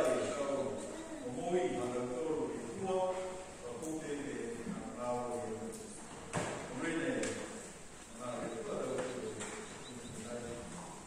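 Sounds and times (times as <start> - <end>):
man speaking over loudspeakers: 0.0 - 5.8, 6.7 - 11.0.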